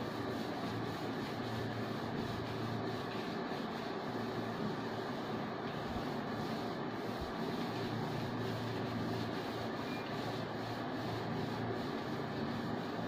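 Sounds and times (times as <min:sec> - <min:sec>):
steady background hum and hiss: 0:00.0 - 0:13.0
whiteboard eraser rubbing: 0:00.0 - 0:13.0.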